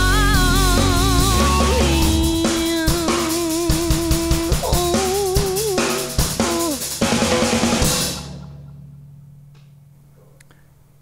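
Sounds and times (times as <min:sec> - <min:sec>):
woman singing with vibrato: 0:00.0 - 0:06.8
electric guitar: 0:00.0 - 0:08.7
loud band hit: 0:00.0 - 0:08.7
drums: 0:00.0 - 0:09.0.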